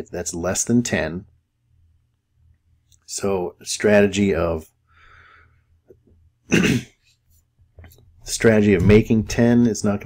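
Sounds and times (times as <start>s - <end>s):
person clearing throat: 6.5s - 7.0s.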